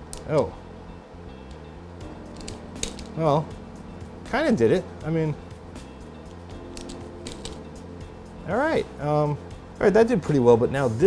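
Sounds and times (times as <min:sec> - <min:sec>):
wire stripper clicking and snapping: 0:00.0 - 0:00.5, 0:02.3 - 0:03.2, 0:06.2 - 0:07.7
faint background music: 0:00.0 - 0:11.0.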